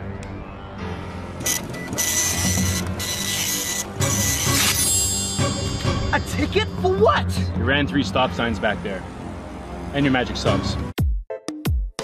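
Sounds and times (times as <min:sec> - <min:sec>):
background music: 0:00.0 - 0:12.0
printer-like rasp with whine: 0:01.4 - 0:04.8.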